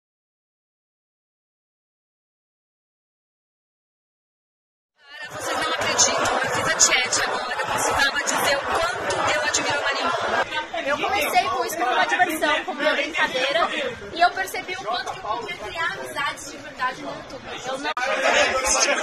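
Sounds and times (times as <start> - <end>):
background chatter: 5.0 - 19.0
people talking: 5.1 - 19.0.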